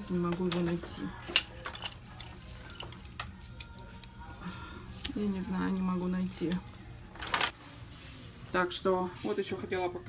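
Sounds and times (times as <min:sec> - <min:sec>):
metal belt buckles clinking: 0:01.3 - 0:04.2.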